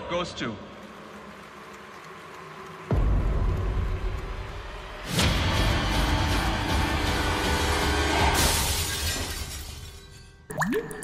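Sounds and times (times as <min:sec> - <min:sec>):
shattering glass effect: 0:08.4 - 0:10.5.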